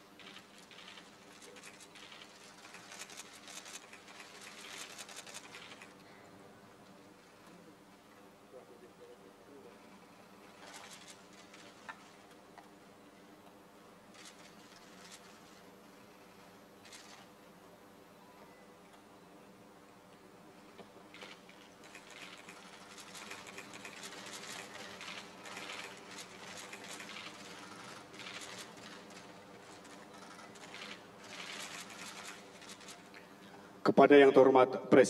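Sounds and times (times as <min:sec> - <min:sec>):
faint room hum: 0:00.0 - 0:35.0
faint irregular clicks: 0:20.8 - 0:33.6.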